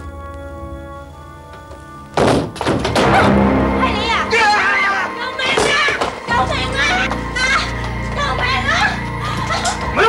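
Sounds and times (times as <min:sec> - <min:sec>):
heavy thunk: 0:02.2 - 0:03.2.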